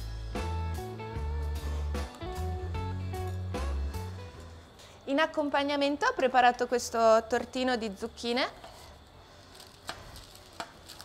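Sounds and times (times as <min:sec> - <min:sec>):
faint kitchen hiss: 0:03.1 - 0:11.0.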